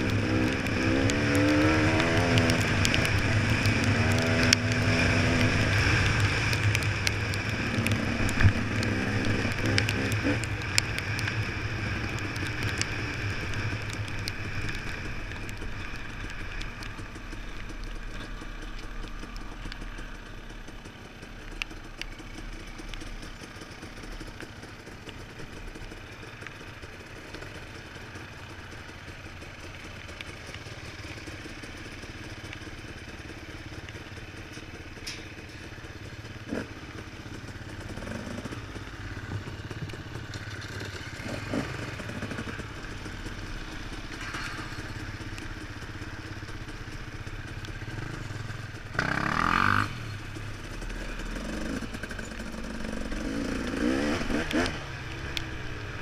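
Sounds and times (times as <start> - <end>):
motorbike engines idling: 0.0 - 56.0.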